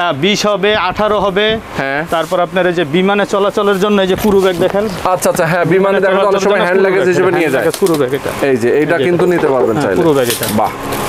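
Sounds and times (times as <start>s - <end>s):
man talking: 0.0s - 10.8s.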